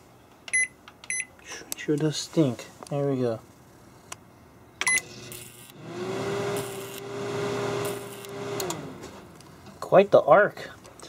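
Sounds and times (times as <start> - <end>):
microwave oven humming: 4.8 - 9.5.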